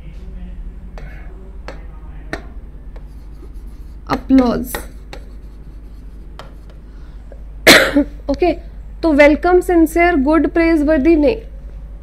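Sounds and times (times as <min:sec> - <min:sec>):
woman coughing: 0:07.6 - 0:08.2.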